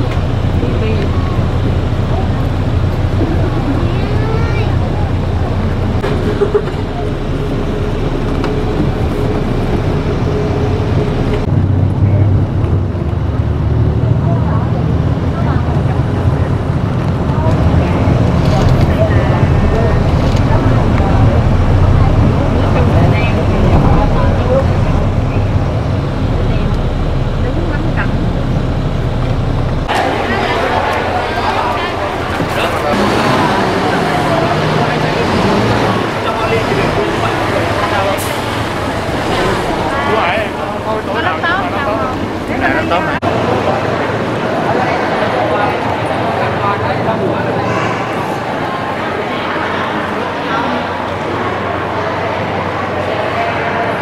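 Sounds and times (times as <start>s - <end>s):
people talking: 0.0s - 54.0s
vehicle rumble and road noise: 0.0s - 54.0s.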